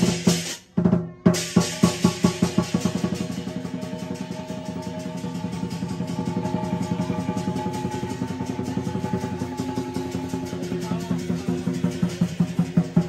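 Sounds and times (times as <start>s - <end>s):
fast drum roll: 0.0s - 13.0s
cymbals ringing: 1.4s - 13.0s.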